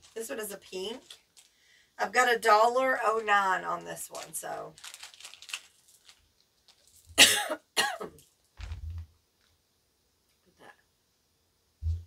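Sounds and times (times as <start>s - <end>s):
woman coughing: 7.2s - 8.2s
soft low sound: 8.6s - 9.1s.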